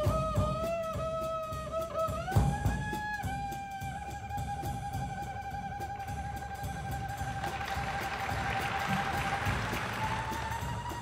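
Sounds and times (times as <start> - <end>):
drum pulse: 0.0 - 11.0
jazz band: 0.0 - 11.0.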